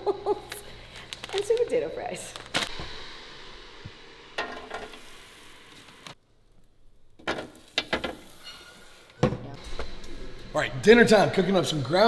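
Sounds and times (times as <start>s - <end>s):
steady hiss: 0.6s - 12.0s.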